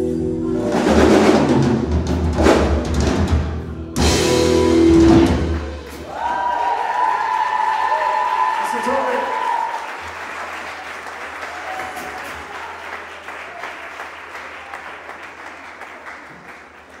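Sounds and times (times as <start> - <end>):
rock band held note: 0.6 - 6.3
audience applauding: 5.2 - 17.0.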